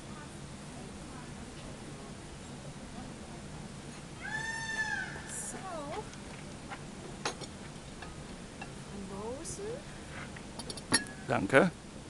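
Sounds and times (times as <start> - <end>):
high-pitched meow-like call: 4.2 - 5.4
wavering call: 4.2 - 5.9.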